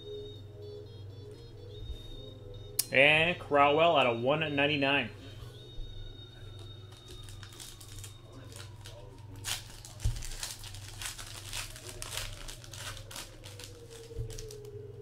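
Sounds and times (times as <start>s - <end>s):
low electrical hum: 0.0s - 15.0s
wrapper crinkling and crackling: 6.6s - 15.0s.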